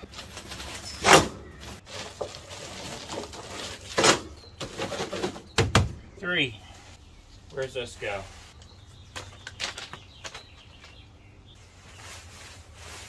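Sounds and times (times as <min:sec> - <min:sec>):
handling knocks and rustles: 0:00.0 - 0:06.0, 0:07.5 - 0:11.0.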